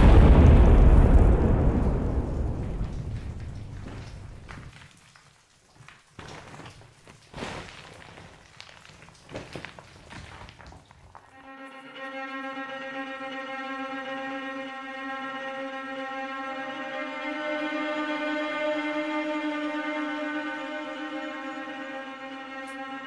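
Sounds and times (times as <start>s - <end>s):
brick wall crumbling: 0.0s - 11.3s
falling debris knocks and crackles: 0.0s - 11.3s
bowed strings chord: 11.3s - 23.0s.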